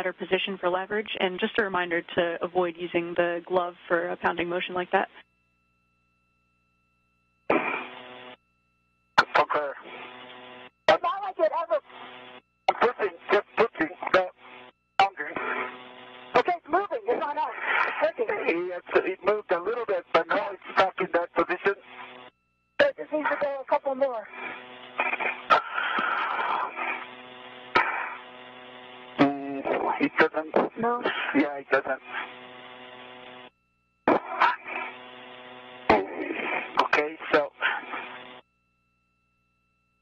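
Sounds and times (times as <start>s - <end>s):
voices over radio: 0.0s - 5.2s, 9.2s - 22.2s, 22.8s - 33.4s, 34.1s - 38.3s.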